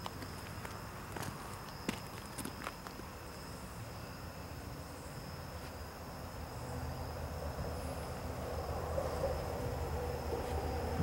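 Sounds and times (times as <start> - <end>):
insect chorus chirring: 0.0 - 11.0.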